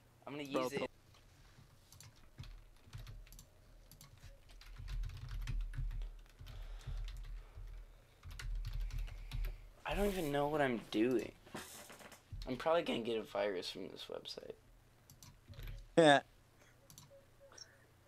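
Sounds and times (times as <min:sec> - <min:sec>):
typing on computer keyboard: 0:01.9 - 0:09.6, 0:15.1 - 0:15.8, 0:16.9 - 0:17.2.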